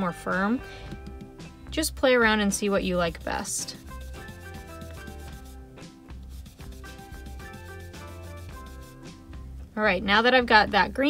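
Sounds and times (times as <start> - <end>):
quiet background music: 0.0 - 11.0
brush rubbing ink on cardstock: 2.4 - 9.1.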